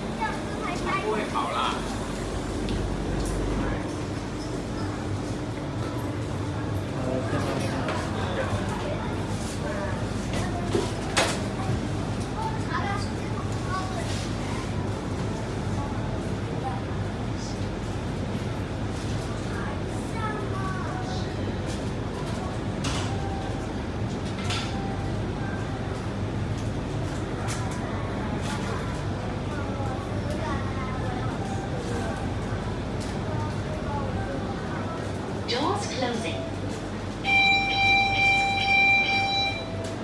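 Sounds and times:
steady low hum: 0.0 - 38.2
faint passenger voices: 0.0 - 40.0.

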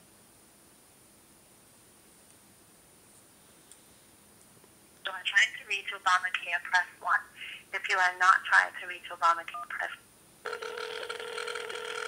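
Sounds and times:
electronic telephone tone: 10.5 - 12.0.

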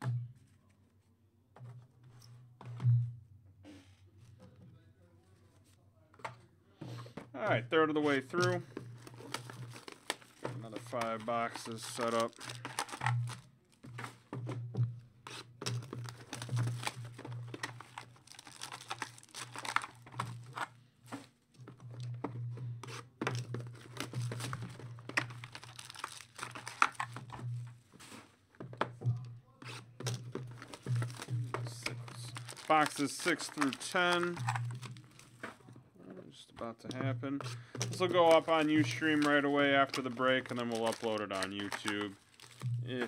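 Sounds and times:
foil packs crinkling: 8.1 - 13.9, 15.3 - 20.8, 23.3 - 27.5, 30.0 - 35.4, 37.6 - 43.0
cardboard boxes tearing open: 11.2 - 13.4, 15.3 - 20.7, 23.8 - 27.2, 30.5 - 35.4, 38.1 - 42.7.

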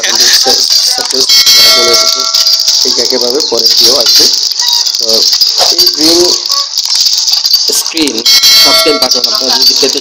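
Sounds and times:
bright bell chime: 1.3 - 2.6, 8.2 - 9.8.

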